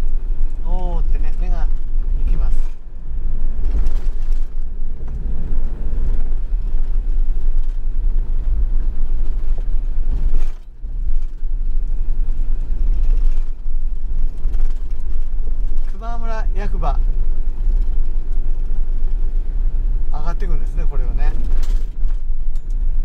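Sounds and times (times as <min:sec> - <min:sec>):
engine and tyre rumble: 0:00.0 - 0:23.0.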